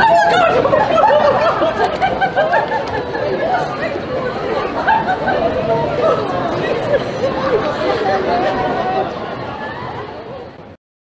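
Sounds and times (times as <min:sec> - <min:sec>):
crowd chatter: 0:00.0 - 0:10.8.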